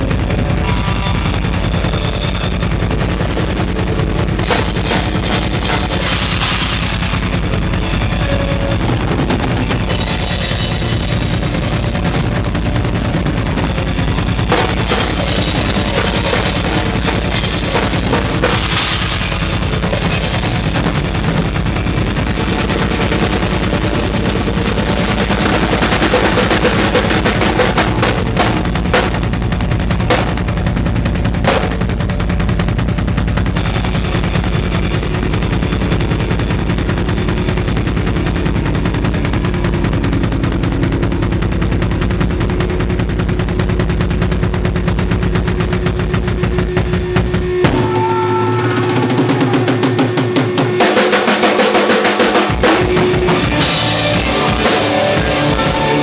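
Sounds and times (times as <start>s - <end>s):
electric guitar: 0.0s - 56.0s
fast bass drum strokes: 0.0s - 56.0s
heavy rock band playing: 0.0s - 56.0s.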